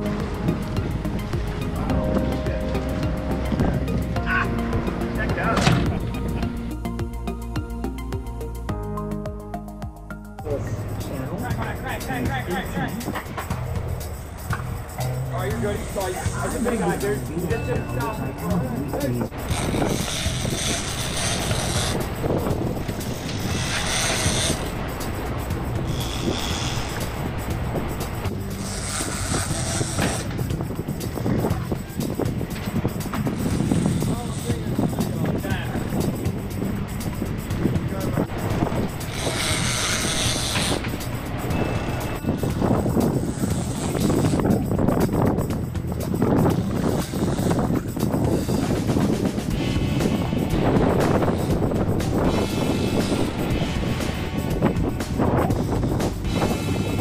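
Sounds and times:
boat engine running: 0:00.0 - 0:57.0
water noise: 0:00.0 - 0:57.0
wind: 0:00.0 - 0:57.0.

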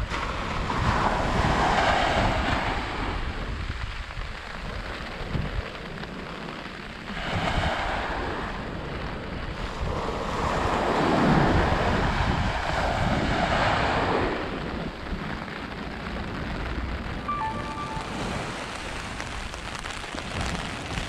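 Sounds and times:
small waves breaking on beach: 0:00.0 - 0:21.0
wind rumbling on microphone: 0:00.0 - 0:21.0.

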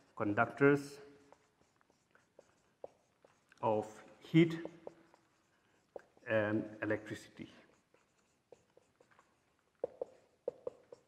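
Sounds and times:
marker squeaking on whiteboard: 0:00.0 - 0:11.0.

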